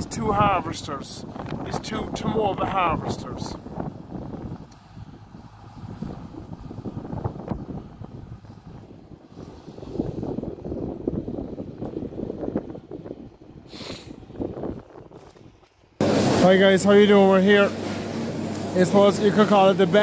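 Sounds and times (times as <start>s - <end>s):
harvester rumbling: 0.0s - 20.0s
brief hiss: 13.7s - 14.2s.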